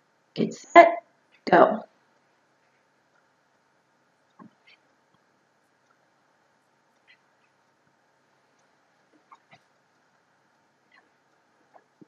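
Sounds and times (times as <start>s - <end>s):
faint chirps or squeaks: 7.0s - 7.6s, 9.2s - 9.6s.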